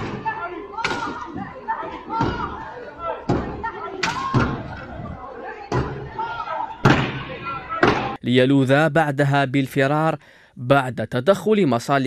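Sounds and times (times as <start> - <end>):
people's voices: 0.0 - 10.2.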